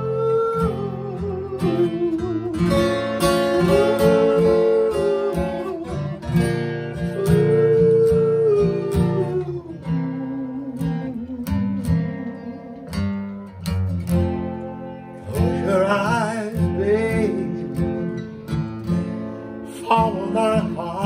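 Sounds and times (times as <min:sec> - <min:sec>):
wordless vocal melody: 0:00.0 - 0:13.2, 0:14.4 - 0:21.0
acoustic guitar strumming: 0:00.0 - 0:21.0.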